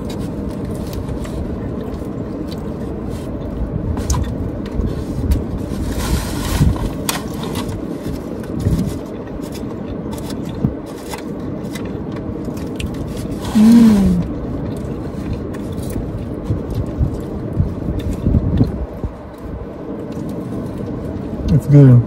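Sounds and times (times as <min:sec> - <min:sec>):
chewing: 0:00.0 - 0:05.5, 0:06.8 - 0:21.5
steady low rumble: 0:00.0 - 0:22.0
foam box scraping: 0:05.0 - 0:07.6.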